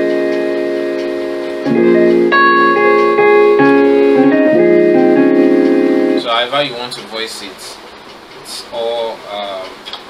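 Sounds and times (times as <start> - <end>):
keyboard playing chords: 0.0 - 6.6.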